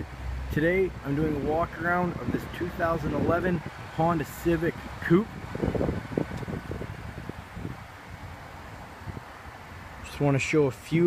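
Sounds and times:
wind on microphone: 0:00.9 - 0:10.0.

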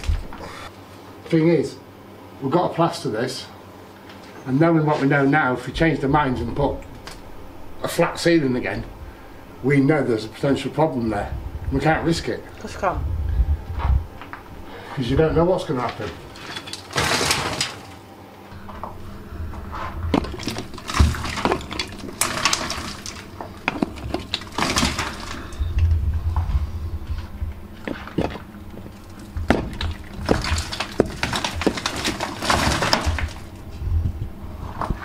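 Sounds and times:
rubble falling and rattling: 0:15.6 - 0:18.0, 0:19.7 - 0:26.0, 0:27.8 - 0:33.7.

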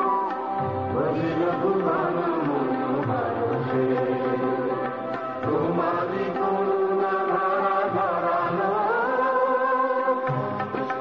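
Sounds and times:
instrumental accompaniment: 0:00.0 - 0:11.0
group singing held notes: 0:01.0 - 0:10.5.

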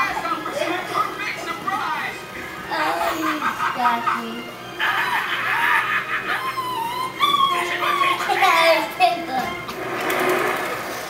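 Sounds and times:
child squealing: 0:05.0 - 0:08.6.

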